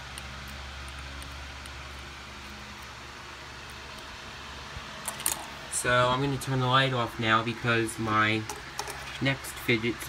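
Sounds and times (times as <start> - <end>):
electric fan whooshing: 0.0 - 10.0.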